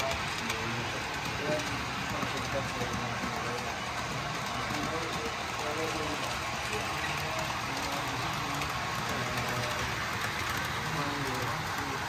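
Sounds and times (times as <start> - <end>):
faint voices talking: 0.0 - 12.0
model train running: 0.0 - 12.0.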